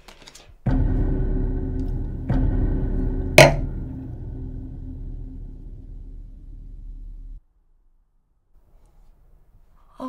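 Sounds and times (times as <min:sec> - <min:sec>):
low dark drone: 0:00.7 - 0:07.4
sharp loud hit: 0:00.7 - 0:07.4.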